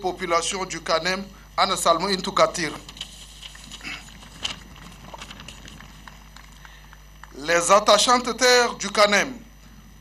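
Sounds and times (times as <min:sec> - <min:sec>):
light clapping: 0:06.0 - 0:07.4.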